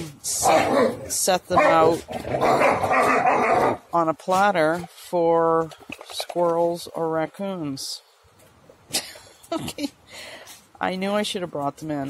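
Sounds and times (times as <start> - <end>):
dog growling: 0.4 - 3.9.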